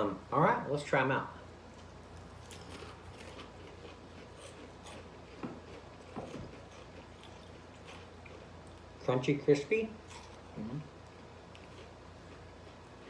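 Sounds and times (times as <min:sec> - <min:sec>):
chewing crunchy crisps: 0:01.6 - 0:09.1, 0:09.9 - 0:13.0.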